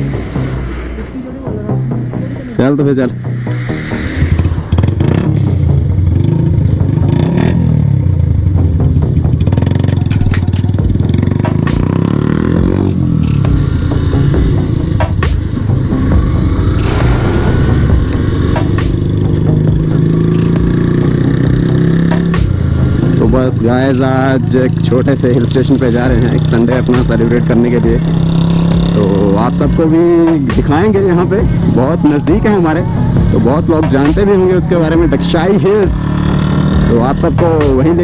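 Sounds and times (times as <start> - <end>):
motorcycle engine accelerating: 0.0 - 38.0.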